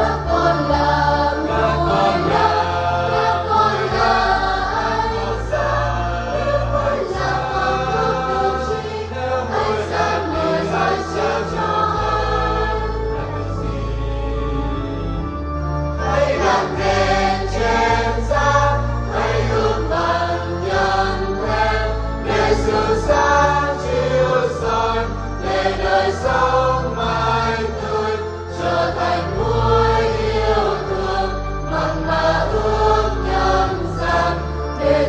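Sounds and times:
church choir singing a hymn: 0.0 - 35.0
instrumental accompaniment: 0.0 - 35.0.

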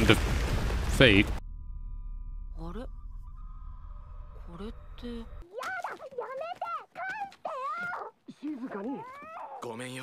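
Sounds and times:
high-pitched cartoon voice speaking: 5.4 - 9.6.

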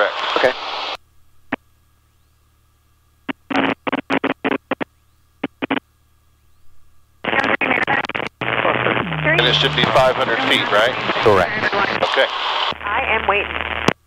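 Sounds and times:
faint steady hum: 0.0 - 14.0
voice over intercom: 8.7 - 13.6.

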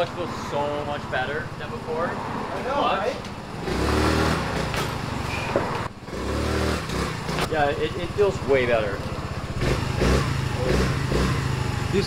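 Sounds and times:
scooter engine revving: 3.4 - 12.0.

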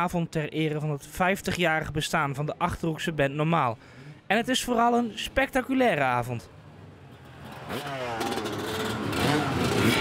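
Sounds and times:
motorcycle engine revving: 7.2 - 10.0.

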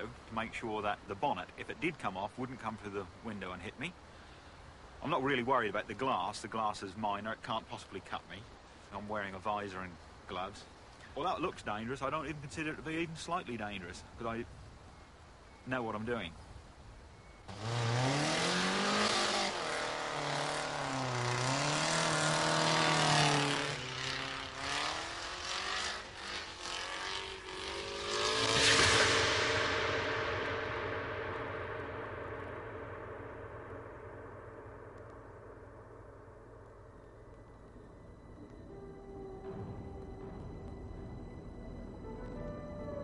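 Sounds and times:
car engine revving hard: 17.5 - 29.2
loud impact: 28.0 - 37.3.

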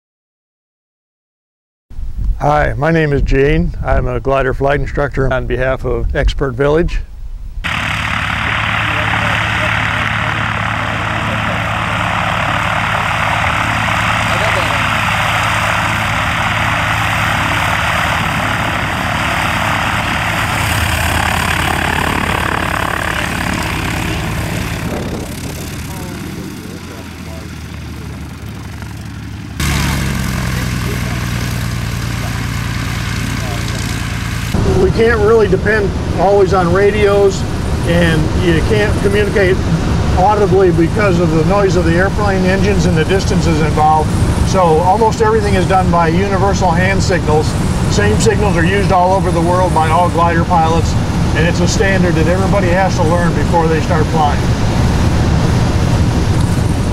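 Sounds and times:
propeller plane engine running: 7.1 - 56.9.

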